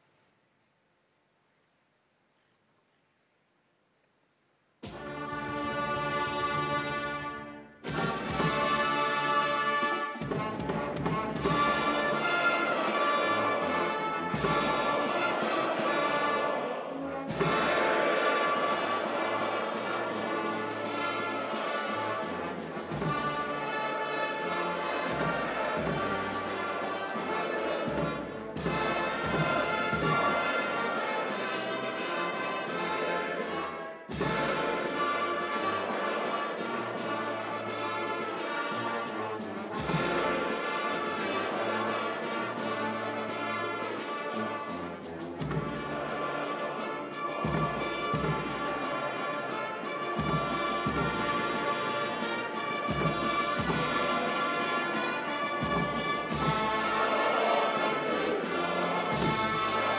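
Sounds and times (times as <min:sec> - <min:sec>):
orchestral brass chords: 0:04.8 - 0:59.9
timpani: 0:04.8 - 0:59.9.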